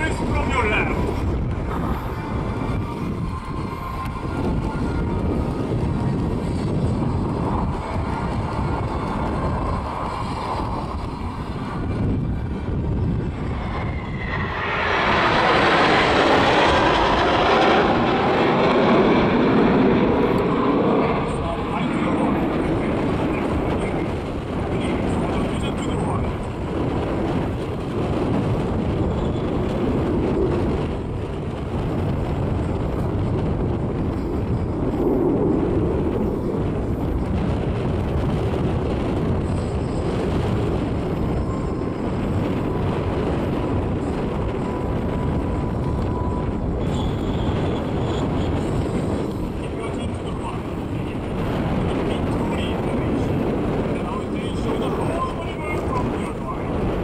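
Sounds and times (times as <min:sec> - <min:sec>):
jet formation roaring past: 0:00.0 - 0:57.0.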